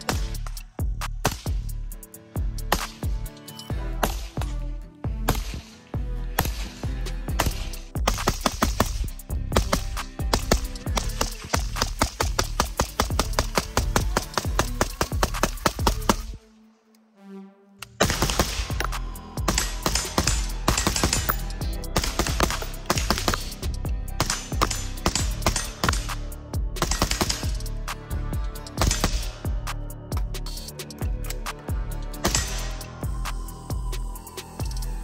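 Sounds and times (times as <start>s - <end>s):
music with a beat: 0.0s - 16.4s, 18.1s - 35.0s
suppressed rifle rapid fire: 7.4s - 16.3s, 18.0s - 23.6s, 24.2s - 27.7s, 28.8s - 29.4s.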